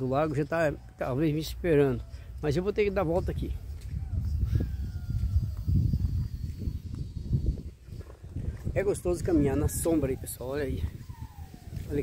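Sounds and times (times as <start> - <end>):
footsteps on paved path: 0.5 - 9.5
wind rumble on microphone: 2.0 - 12.0
microphone handling noise: 3.7 - 9.6.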